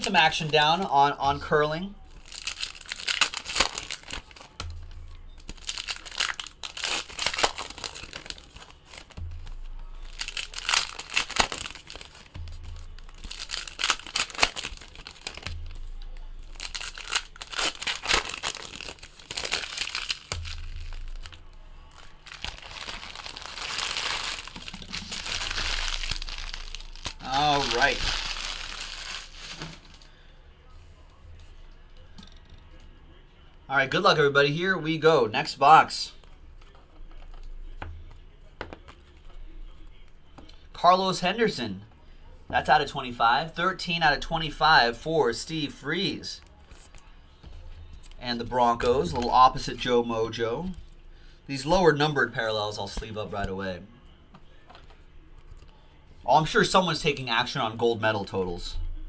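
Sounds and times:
plastic wrappers crinkling and tearing: 0:00.0 - 0:01.1, 0:02.0 - 0:30.2.

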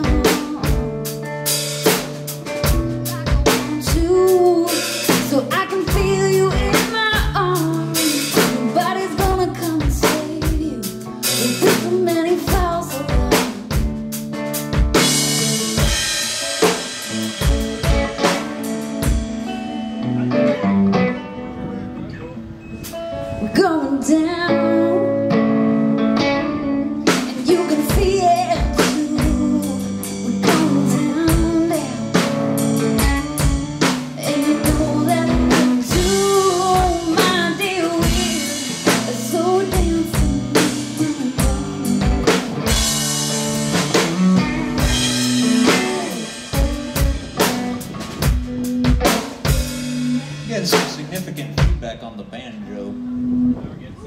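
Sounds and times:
bending melody line: 0:00.0 - 0:54.0
live band playing: 0:00.0 - 0:54.0.

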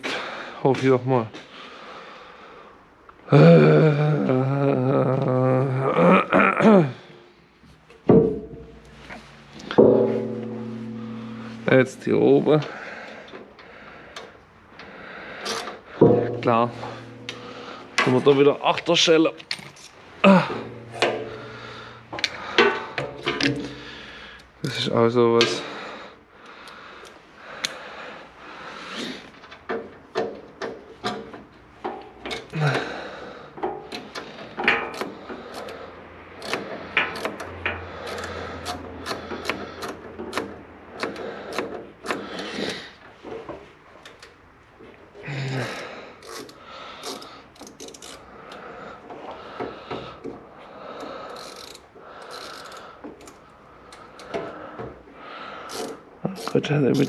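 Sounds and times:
metal tool clicks and knocks: 0:08.1 - 0:11.9, 0:15.5 - 0:19.7, 0:20.5 - 0:23.8, 0:33.6 - 0:42.8.

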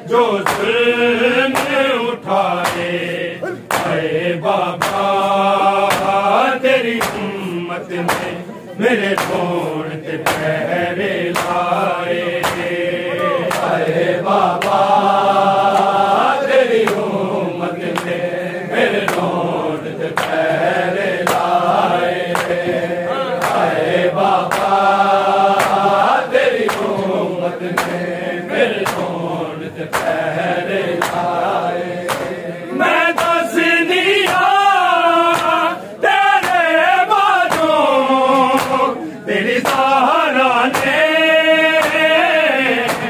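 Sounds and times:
men chanting a lament: 0:00.0 - 0:43.0
hands slapping chests: 0:00.4 - 0:08.4, 0:09.0 - 0:18.2, 0:18.9 - 0:35.7, 0:36.4 - 0:38.9, 0:39.5 - 0:43.0.

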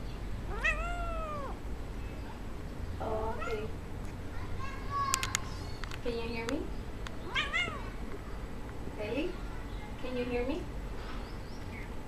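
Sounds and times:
cat meowing: 0:00.5 - 0:01.6, 0:03.3 - 0:03.7, 0:07.3 - 0:08.0.

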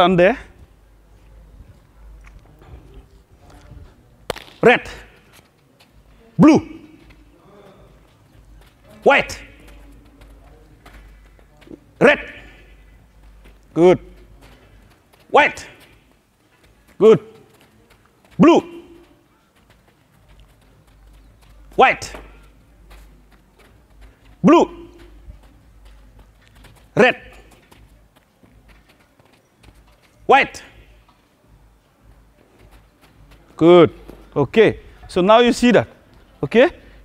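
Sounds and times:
low steady background noise: 0:00.0 - 0:37.0
child running footsteps: 0:00.5 - 0:37.0.

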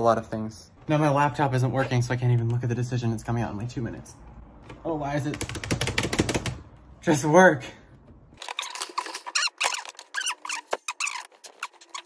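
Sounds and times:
high-pitched sliding squeaks: 0:08.4 - 0:12.0.

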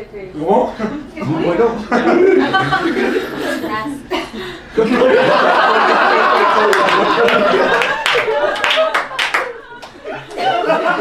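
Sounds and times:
audience clapping: 0:05.5 - 0:11.0.

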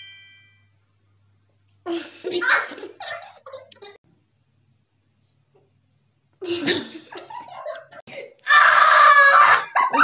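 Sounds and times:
girl screaming: 0:08.4 - 0:09.8.

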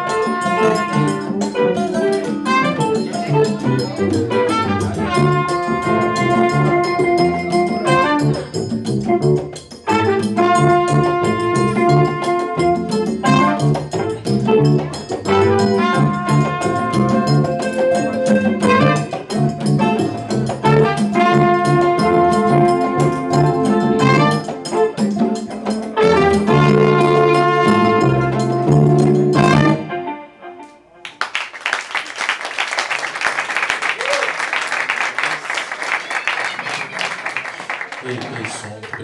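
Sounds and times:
live band playing: 0:00.0 - 0:38.1
audience applause: 0:31.0 - 0:39.0.

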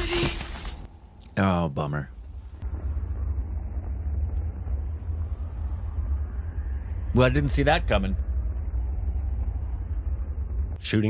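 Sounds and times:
steady low rumble: 0:00.9 - 0:11.0.

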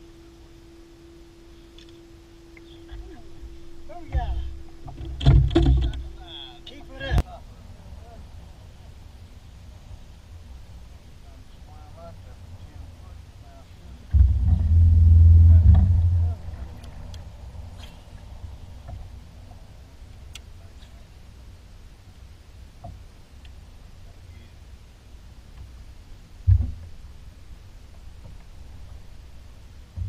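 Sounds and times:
loud low rumble: 0:14.1 - 0:17.7.

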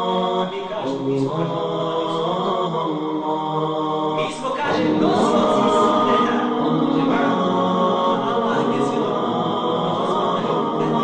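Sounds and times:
voices chanting unaccompanied: 0:00.0 - 0:11.0.

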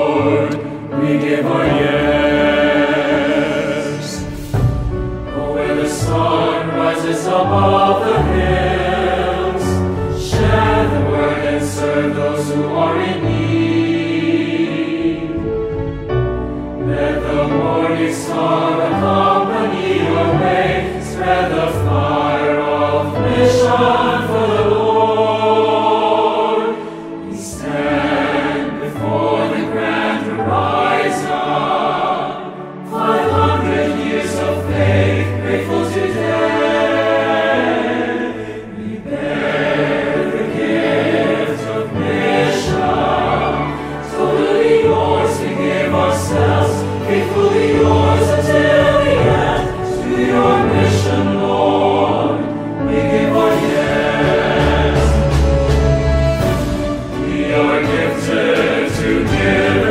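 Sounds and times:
instrumental backing with bass notes: 0:00.0 - 0:26.2, 0:38.8 - 0:59.9
choir singing: 0:00.0 - 0:59.9.

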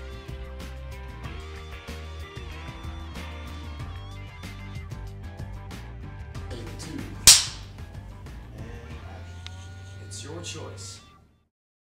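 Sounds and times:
quiet background music: 0:06.4 - 0:11.5
clapperboard snapping shut: 0:07.3 - 0:07.6.

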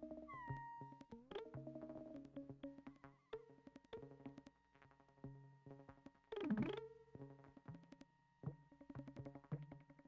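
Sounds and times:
electronic synthesizer music: 0:00.3 - 0:01.0.

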